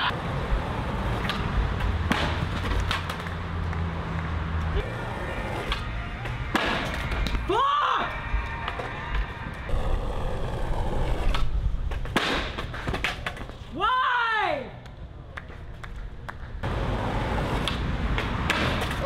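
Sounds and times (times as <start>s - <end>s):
skateboard wheels rolling on concrete: 0.0s - 14.0s, 14.8s - 19.0s
skateboard impacts: 1.0s - 3.4s, 5.4s - 7.5s, 9.8s - 13.6s, 15.5s - 19.0s
onlookers shouting: 4.8s - 9.7s.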